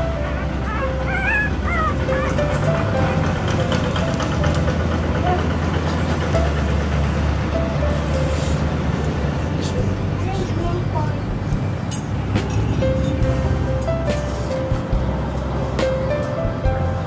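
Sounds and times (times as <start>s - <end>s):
puppy squealing: 0.0s - 4.0s
background music: 0.0s - 17.0s.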